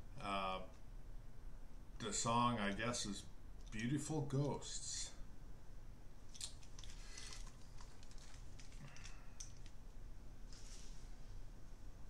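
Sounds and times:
headphones clicking and rustling: 6.3 - 9.9.

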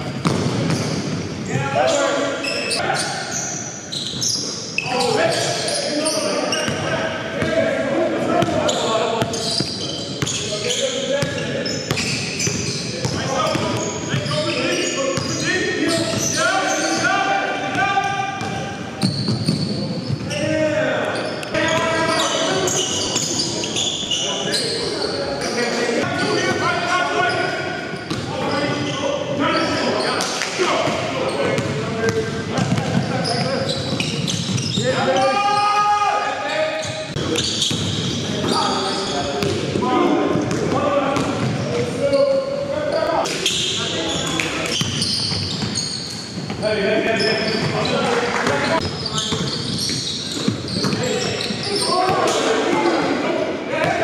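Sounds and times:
voices in large hall: 0.0 - 54.0.

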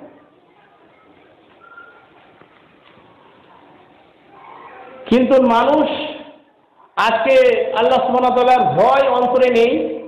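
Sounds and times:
faint steady background noise: 0.0 - 10.0.

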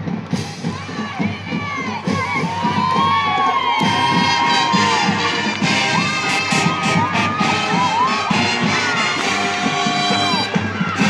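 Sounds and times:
crowd cheering and shouting: 0.0 - 11.0
marching band drums: 0.0 - 11.0.

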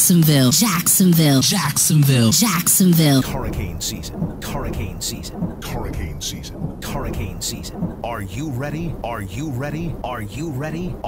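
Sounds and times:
electronically warped voice: 0.0 - 11.0
sharp thunder cracks: 3.2 - 9.1
rumbling thunder: 3.2 - 11.0.

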